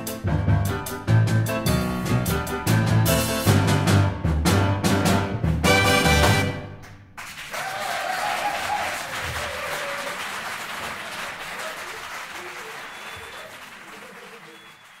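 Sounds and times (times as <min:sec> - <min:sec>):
audience applause: 0:07.2 - 0:15.0.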